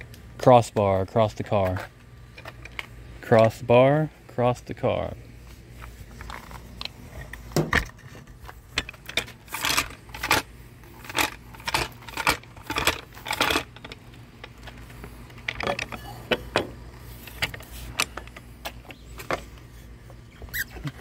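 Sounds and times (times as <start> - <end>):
metal and plastic parts jingling: 8.7 - 16.7.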